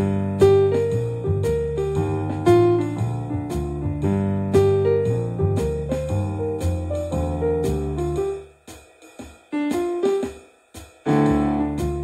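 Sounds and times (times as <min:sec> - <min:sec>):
piano playing blues: 0:00.0 - 0:08.5, 0:09.5 - 0:10.4, 0:11.1 - 0:12.0.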